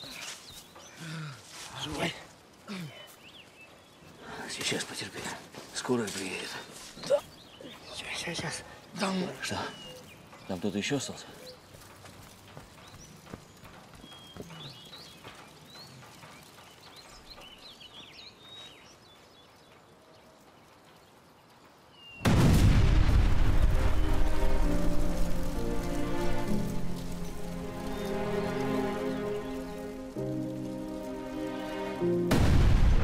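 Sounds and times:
faint bird chirps: 6.4 - 12.0, 12.6 - 22.3
loud explosion: 22.2 - 24.7, 32.3 - 33.0
dramatic music: 23.5 - 33.0.

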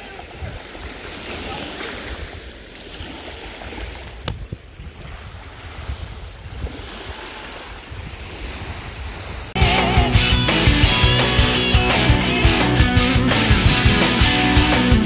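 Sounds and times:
small waves washing onto sand: 0.0 - 9.6
wind buffeting microphone: 1.9 - 9.6
loud guitar music: 9.6 - 15.0.

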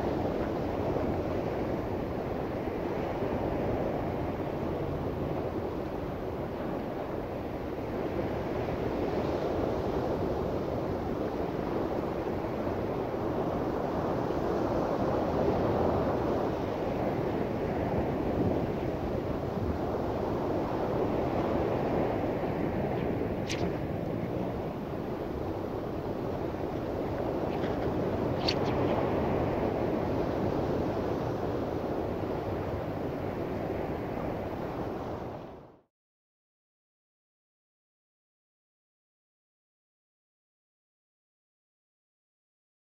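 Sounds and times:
wind blowing across microphone: 0.0 - 35.8.

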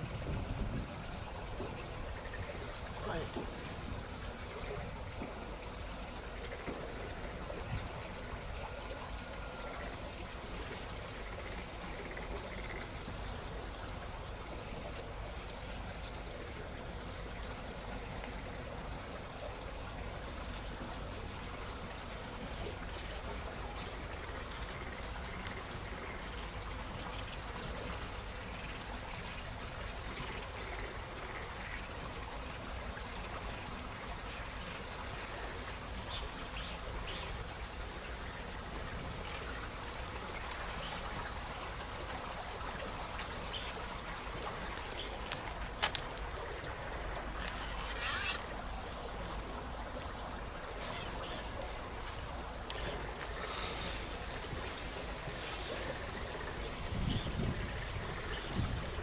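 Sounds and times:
running water: 0.0 - 59.0.

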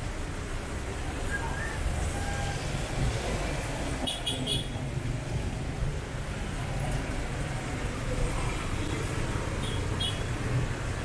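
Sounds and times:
traffic on wet pavement: 0.0 - 11.0.

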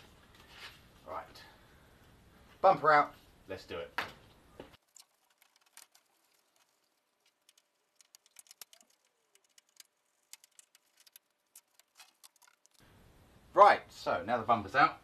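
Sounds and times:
faint clicks and ticks: 4.8 - 12.8.

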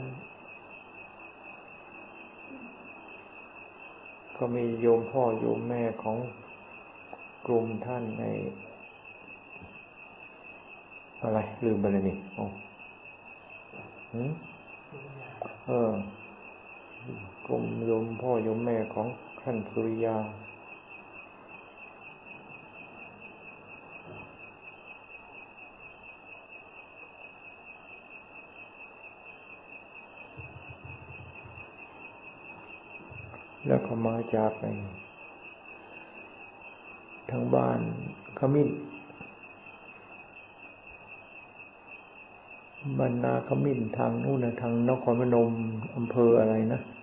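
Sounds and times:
background hiss: 0.0 - 47.0
high-pitched whine: 0.0 - 47.0.

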